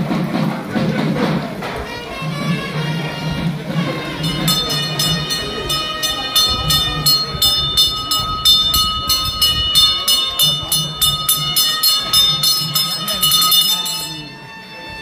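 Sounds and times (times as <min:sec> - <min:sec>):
temple bells ringing rapidly: 0:03.4 - 0:15.0.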